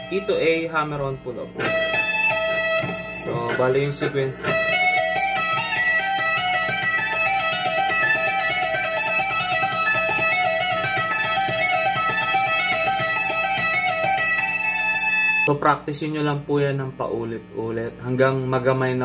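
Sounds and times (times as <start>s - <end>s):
electric guitar legato run: 0.0s - 19.0s.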